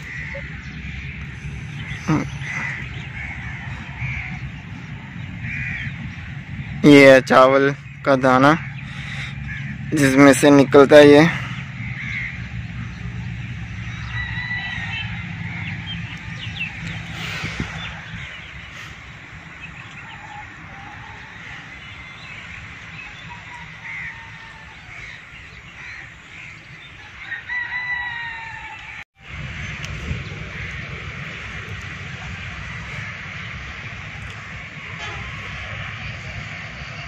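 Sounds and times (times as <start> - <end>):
birds calling: 0.0 - 37.0
rooster crowing: 13.9 - 16.7, 20.0 - 22.3, 23.0 - 25.1, 27.0 - 29.0.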